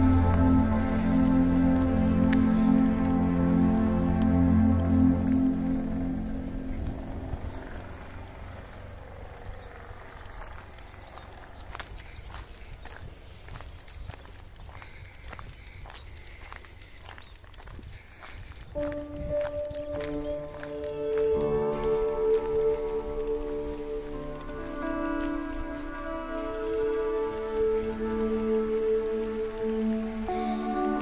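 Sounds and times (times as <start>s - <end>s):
background music: 0.0s - 7.8s, 18.8s - 31.0s
faint outdoor ambience: 0.0s - 31.0s
footsteps on gravel path: 0.0s - 31.0s.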